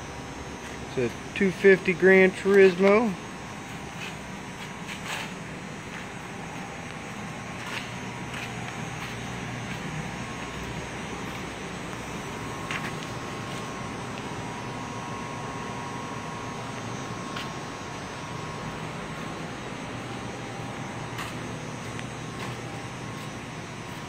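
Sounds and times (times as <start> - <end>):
background hum and hiss: 0.0 - 24.0
faint high whine: 0.0 - 24.0.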